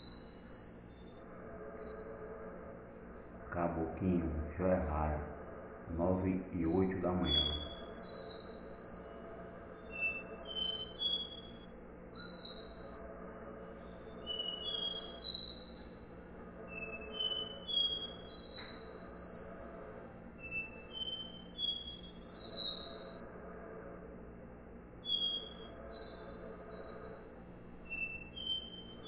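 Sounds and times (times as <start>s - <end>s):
bird whistled song: 0.0s - 1.2s, 6.7s - 13.0s, 13.6s - 23.2s, 25.0s - 29.0s.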